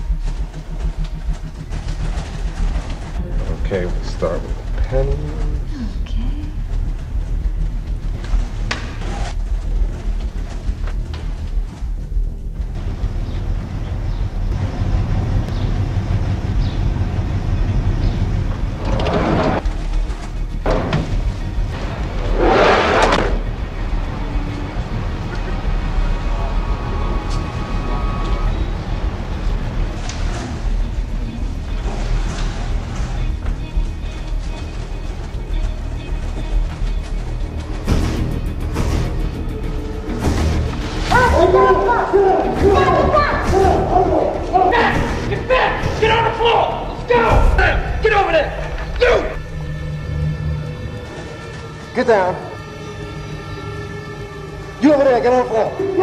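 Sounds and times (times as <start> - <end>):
film soundtrack music: 0.0 - 56.0.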